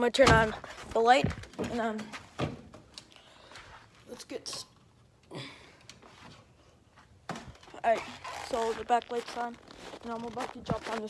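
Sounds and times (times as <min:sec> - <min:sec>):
person speaking: 0:00.0 - 0:02.2, 0:07.7 - 0:11.0.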